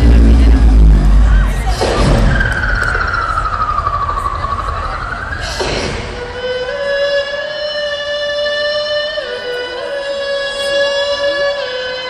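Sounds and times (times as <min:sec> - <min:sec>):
low rumble: 0:00.0 - 0:06.4.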